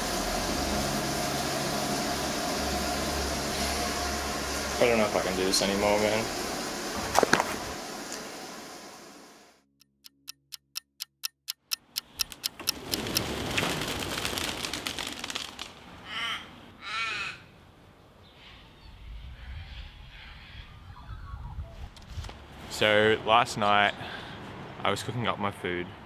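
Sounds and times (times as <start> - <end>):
outdoor background noise: 0.0 - 9.6, 11.6 - 26.0
evenly spaced ticks: 9.8 - 15.6
crow cawing: 16.0 - 17.5.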